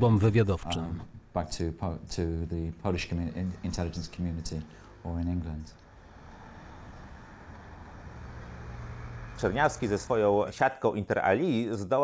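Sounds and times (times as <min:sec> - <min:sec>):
distant traffic hum: 0:00.0 - 0:12.0.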